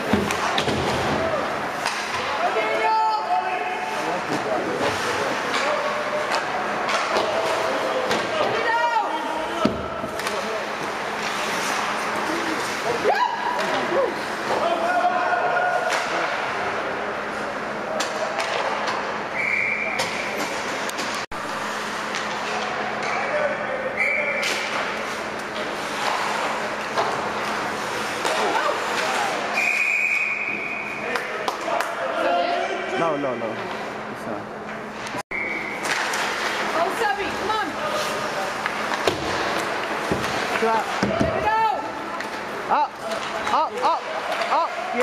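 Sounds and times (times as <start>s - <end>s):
hockey sticks and puck clacking: 0.0s - 2.9s, 4.3s - 14.6s, 15.7s - 16.6s, 18.0s - 19.2s, 24.4s - 29.6s, 31.1s - 32.0s, 34.7s - 45.0s.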